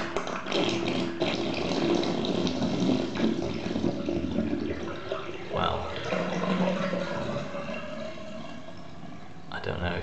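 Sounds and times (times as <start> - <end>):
water bubbling: 0.0 - 9.5
bath water draining: 0.0 - 10.0.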